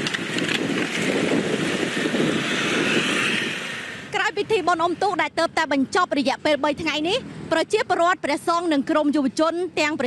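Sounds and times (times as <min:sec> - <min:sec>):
motorbikes and scooters passing: 0:00.0 - 0:10.0.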